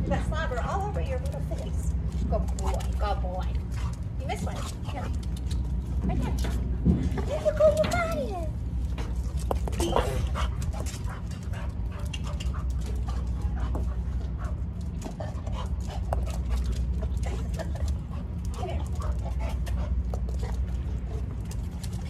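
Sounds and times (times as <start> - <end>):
steady low hum: 0.0 - 22.0
claws and ball clicking on concrete: 0.1 - 22.0.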